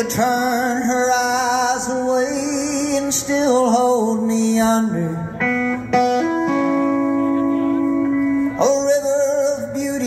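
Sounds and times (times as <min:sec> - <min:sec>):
electric guitar sustained notes: 0:00.0 - 0:10.0
live band playing: 0:02.9 - 0:10.0.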